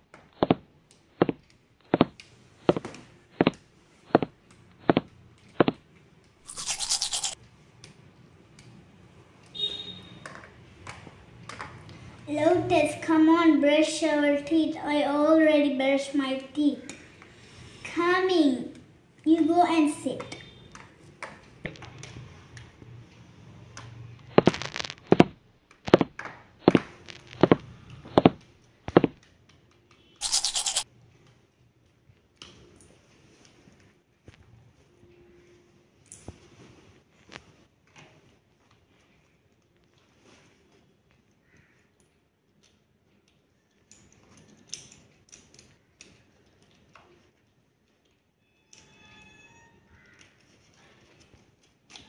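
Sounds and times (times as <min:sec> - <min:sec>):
scratchy rushing noise: 0:06.5 - 0:07.4, 0:24.3 - 0:25.4, 0:30.2 - 0:30.8
toothbrush scrubbing: 0:06.5 - 0:07.4, 0:30.2 - 0:30.8.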